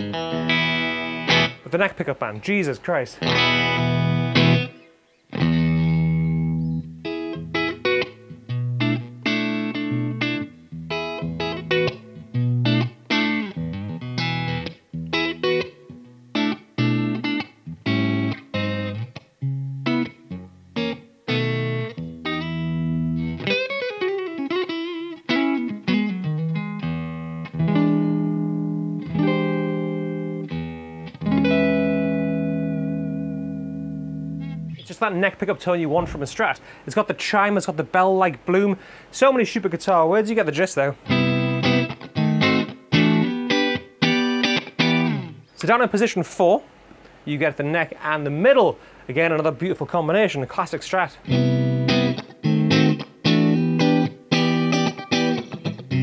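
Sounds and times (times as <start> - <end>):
clean electric guitar playing: 0.0 - 1.8, 3.2 - 35.0, 41.0 - 45.7, 51.2 - 56.0.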